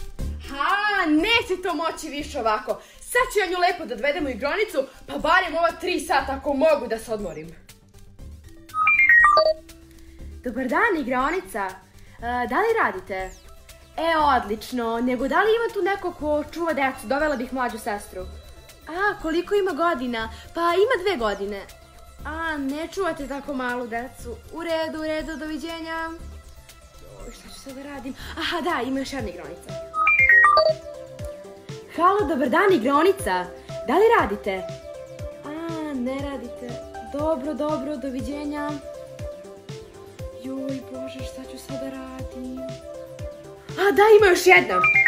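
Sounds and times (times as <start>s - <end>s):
background music: 0.0s - 45.0s
phone call tone notes: 8.7s - 9.6s, 30.0s - 30.8s, 44.6s - 45.0s.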